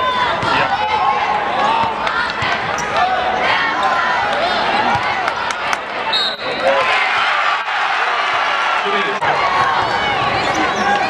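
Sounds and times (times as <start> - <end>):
voices in arena: 0.0 - 11.0.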